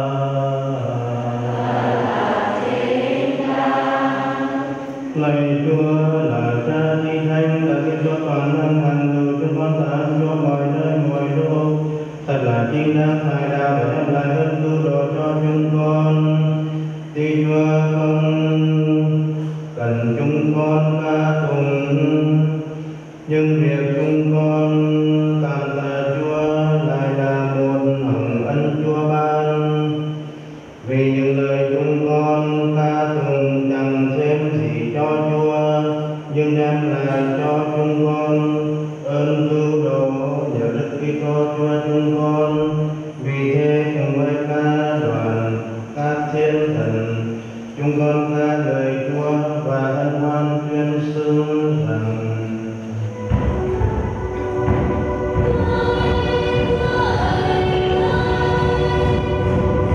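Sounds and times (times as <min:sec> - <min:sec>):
man chanting: 0:00.0 - 0:53.2.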